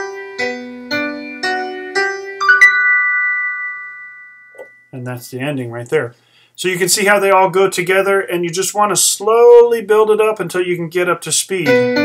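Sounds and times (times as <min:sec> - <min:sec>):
digital piano chord ringing: 0:01.5 - 0:05.0.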